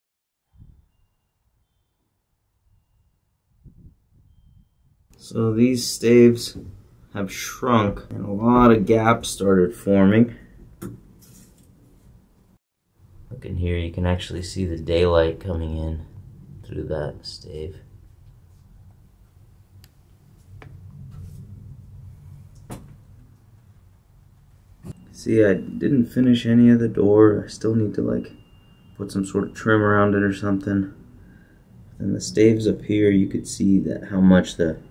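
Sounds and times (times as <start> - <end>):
brief low rumbles: 16.0 - 25.0.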